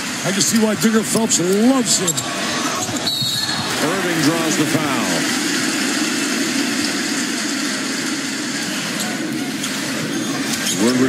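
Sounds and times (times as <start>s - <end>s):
arena crowd cheering: 0.2s - 9.3s.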